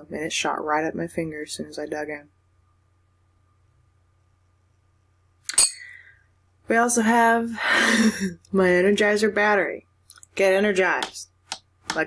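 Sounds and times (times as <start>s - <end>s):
trinkets clinking against glass bowl: 5.5s - 6.0s.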